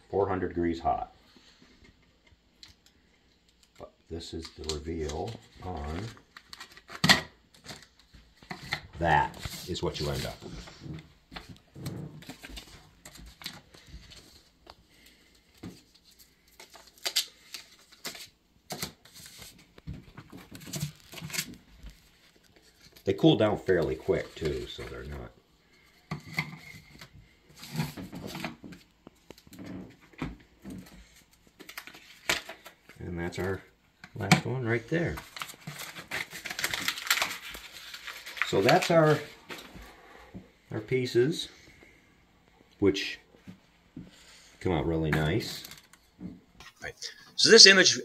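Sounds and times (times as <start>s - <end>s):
paper rustling and crackling: 4.4s - 23.0s, 35.0s - 39.8s.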